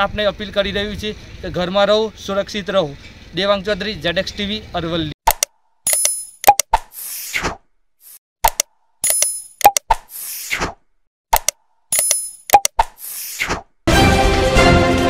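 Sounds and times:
sharp clicks: 5.3s - 6.9s, 8.4s - 10.1s, 11.3s - 13.1s.

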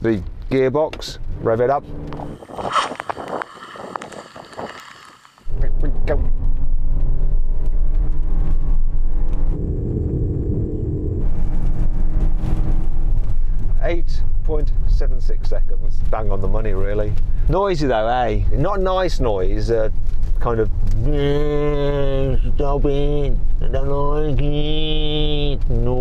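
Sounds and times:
road noise: 0.0s - 21.0s.

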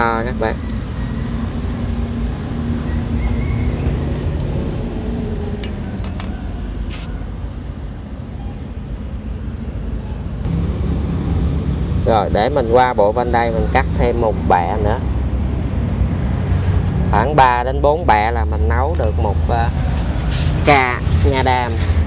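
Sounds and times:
low mechanical rumble: 0.6s - 16.4s.

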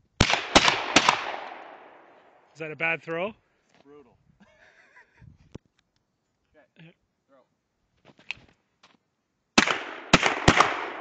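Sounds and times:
shotgun shots with echo: 0.2s - 2.0s, 9.6s - 11.0s.

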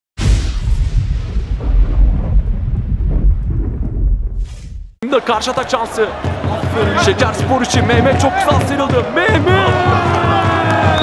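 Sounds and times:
deep rumble: 0.2s - 5.0s
loud boom with crash: 0.2s - 5.0s.

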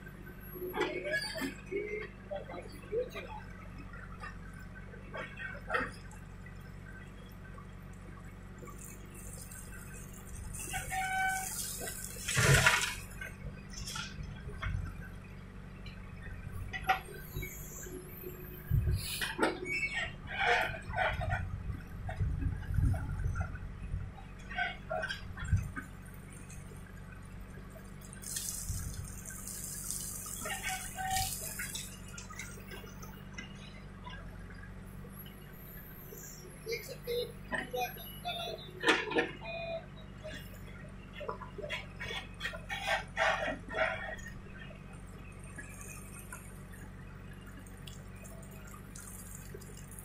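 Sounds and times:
backhoe engine running: 0.0s - 50.0s.

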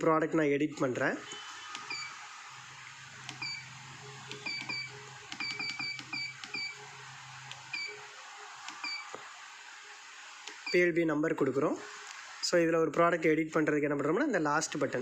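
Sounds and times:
keypad beeps: 1.3s - 2.2s, 3.3s - 3.7s, 4.3s - 6.8s, 7.6s - 8.0s, 8.7s - 9.1s.

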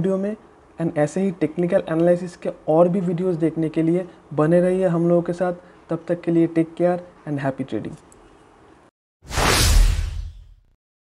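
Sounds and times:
whoosh transition effect: 9.3s - 10.7s.

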